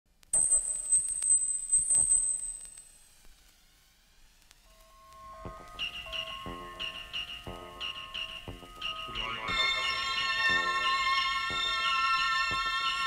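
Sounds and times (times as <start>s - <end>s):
wavering electronic whine: 0.4s - 13.0s.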